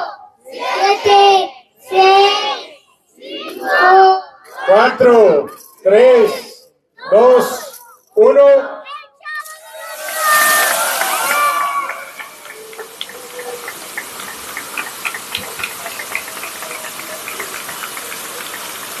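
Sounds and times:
crowd cheering and shouting: 0:09.2 - 0:19.0
spark fountains hissing and crackling: 0:09.4 - 0:19.0.

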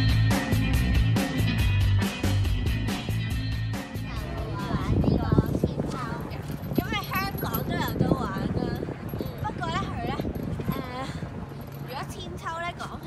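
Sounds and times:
swing hangers squeaking: 0:06.0 - 0:13.0.

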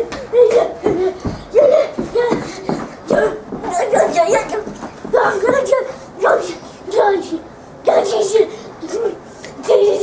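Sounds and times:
girl yelling in high yelps: 0:00.3 - 0:10.0.

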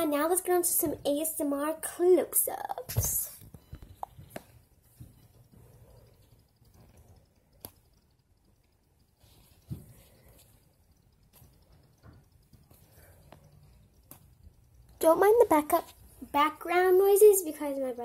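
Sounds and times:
fingers squeezing foam toy: 0:03.0 - 0:16.4
soft clicks: 0:03.0 - 0:16.6.

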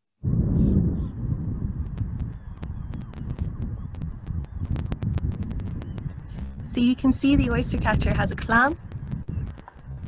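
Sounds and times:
wind rumble on microphone: 0:00.2 - 0:10.0
faint bird calls: 0:01.8 - 0:05.0
sharp clicks: 0:08.8 - 0:10.0.

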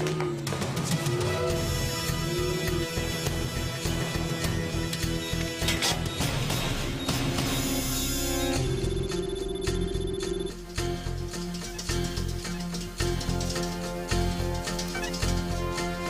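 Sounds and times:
pulsing synth music score: 0:00.0 - 0:16.0
high repeating electronic beep: 0:05.0 - 0:10.8.

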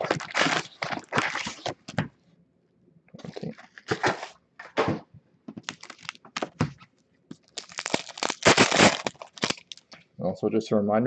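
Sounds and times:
wrapper being torn and crinkled: 0:00.0 - 0:01.9, 0:05.6 - 0:06.6, 0:07.4 - 0:10.0.

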